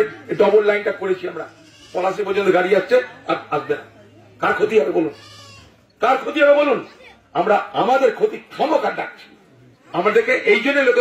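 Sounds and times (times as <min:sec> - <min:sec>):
man speaking into a microphone: 0:00.0 - 0:05.2, 0:06.0 - 0:11.0.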